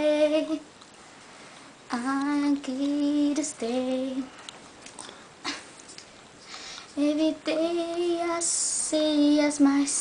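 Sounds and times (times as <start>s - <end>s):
sharp intake of breath: 6.4s - 6.9s.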